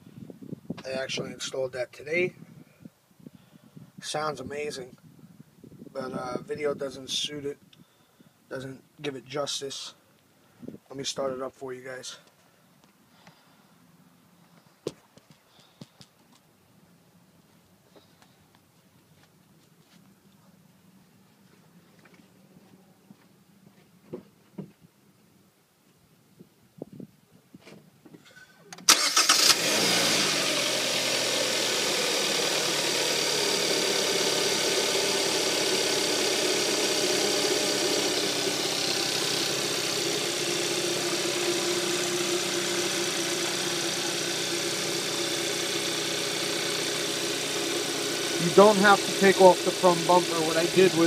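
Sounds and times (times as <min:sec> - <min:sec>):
car engine starting and idling: 0:28.8 - 0:51.0.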